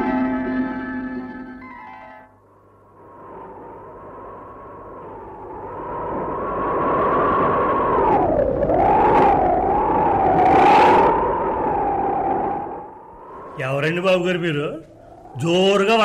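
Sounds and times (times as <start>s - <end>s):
howling wind: 2.2s - 16.0s.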